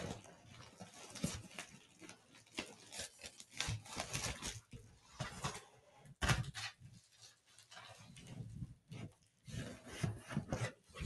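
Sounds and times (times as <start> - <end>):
bubble wrap crinkling: 0.0 - 5.7.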